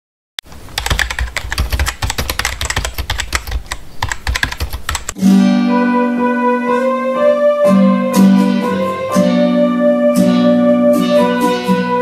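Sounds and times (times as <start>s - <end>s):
electronic keyboard chord: 5.2s - 12.0s.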